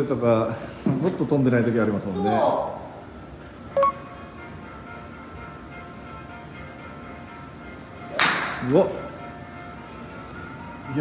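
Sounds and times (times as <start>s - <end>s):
golf club striking ball: 8.1s - 8.8s.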